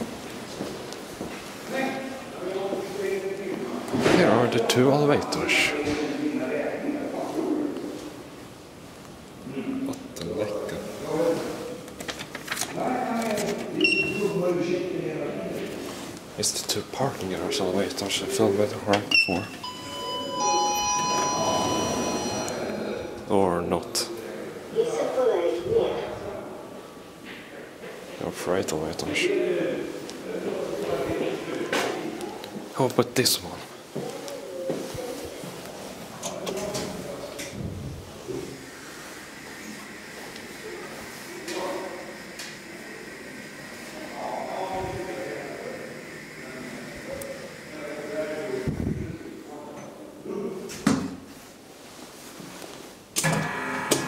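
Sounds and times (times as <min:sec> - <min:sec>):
elevator doors sliding open: 0:19.2 - 0:22.7
elevator two-note chime: 0:19.6 - 0:22.9
elevator whine: 0:19.6 - 0:23.4, 0:38.6 - 0:49.3, 0:53.2 - 0:54.0.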